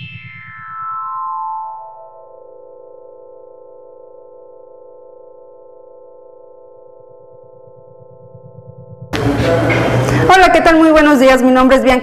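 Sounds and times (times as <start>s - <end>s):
held synthesizer chord: 0.0s - 10.8s.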